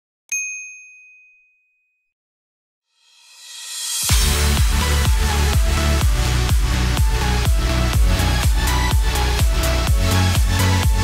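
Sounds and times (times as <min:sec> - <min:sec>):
notification bell ding: 0:00.3 - 0:02.1.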